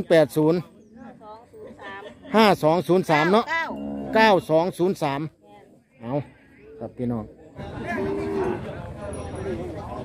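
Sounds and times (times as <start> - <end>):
chatter of market crowd: 0.0 - 10.0
cow mooing: 3.6 - 4.3, 8.0 - 8.6.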